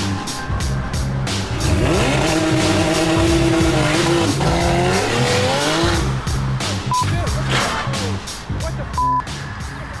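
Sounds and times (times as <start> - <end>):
background music with beat: 0.0 - 10.0
car engine and tyres: 0.0 - 10.0
short high beep: 6.9 - 7.1, 9.0 - 9.2.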